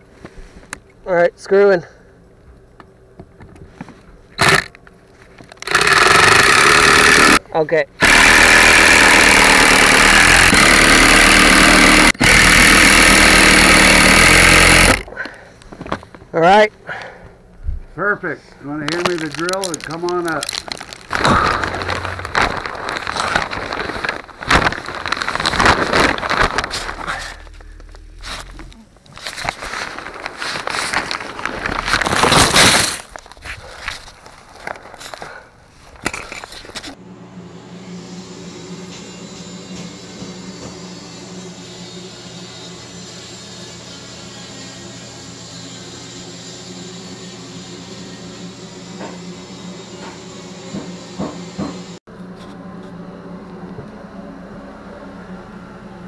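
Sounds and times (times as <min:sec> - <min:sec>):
low electrical hum: 0:14.0 - 0:38.1
rustling and crackling insulation: 0:18.8 - 0:37.0.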